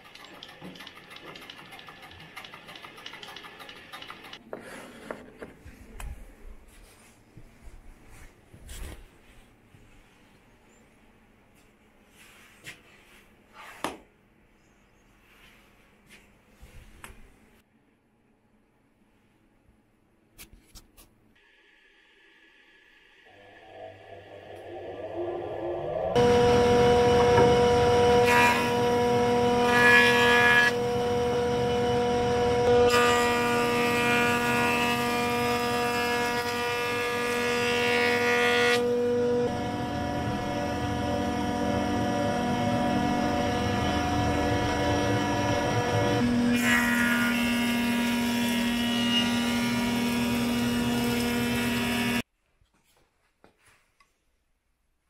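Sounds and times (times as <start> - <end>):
motor humming: 23.3 - 29.8, 38.8 - 46.5
jointer cutting wood: 26.1 - 52.2.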